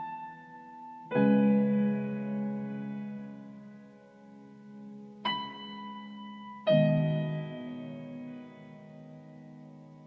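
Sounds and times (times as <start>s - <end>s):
held piano chord: 0.0s - 10.0s.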